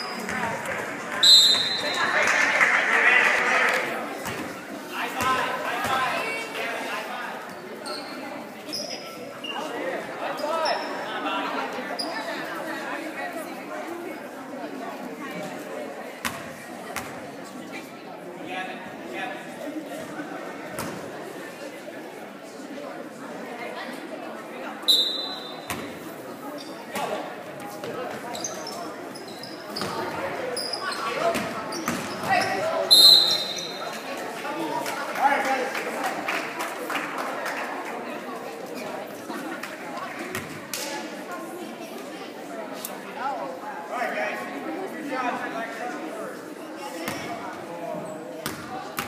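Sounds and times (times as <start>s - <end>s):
voices and shouts echoing: 0.0s - 49.0s
sneakers squeaking on gym floor: 7.8s - 9.7s, 10.3s - 11.0s, 27.8s - 33.8s.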